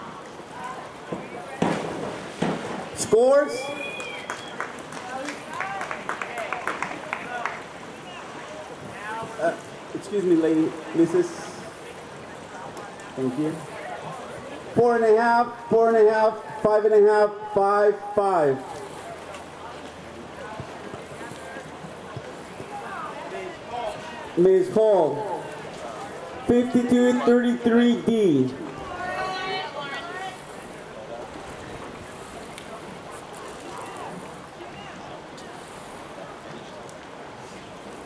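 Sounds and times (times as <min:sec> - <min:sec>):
faint distant voices: 0:00.0 - 0:38.0
diver splashing into water: 0:01.5 - 0:03.0.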